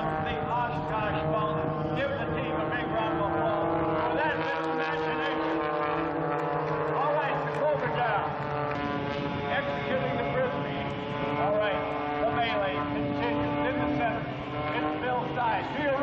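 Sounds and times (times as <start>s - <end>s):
propeller planes droning overhead: 0.0s - 16.0s.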